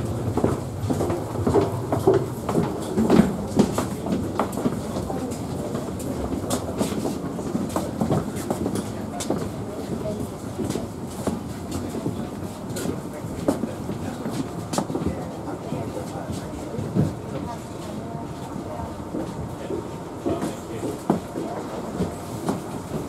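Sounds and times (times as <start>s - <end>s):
clicks and knocks from walkway floor: 0.2s - 23.0s.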